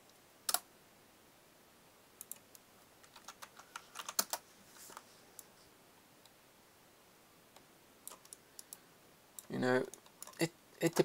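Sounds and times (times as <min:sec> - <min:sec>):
computer keyboard clicks: 0:03.0 - 0:04.4.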